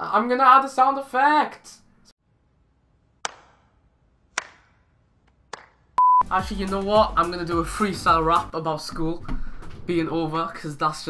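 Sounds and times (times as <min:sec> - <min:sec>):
slow hand claps with echo: 0:03.2 - 0:03.7, 0:04.3 - 0:05.9.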